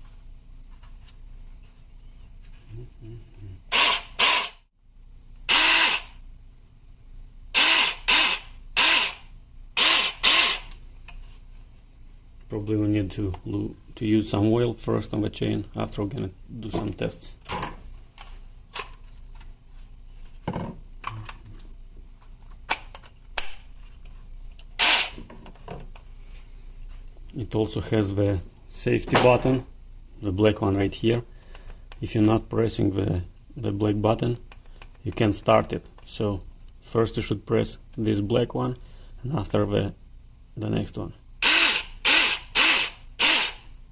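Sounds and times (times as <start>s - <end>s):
electric chainsaw bursts: 3.7s - 4.6s, 5.5s - 6.2s, 7.6s - 10.7s, 24.8s - 25.2s, 41.4s - 43.7s.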